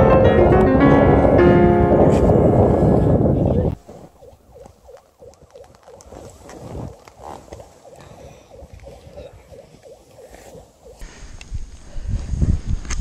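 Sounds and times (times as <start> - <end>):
wind on microphone: 0.0 - 13.0
skis running through powder snow: 6.0 - 8.2.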